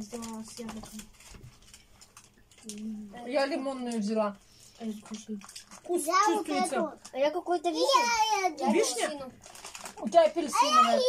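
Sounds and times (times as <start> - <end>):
woman speaking: 2.9 - 5.4, 10.0 - 11.0.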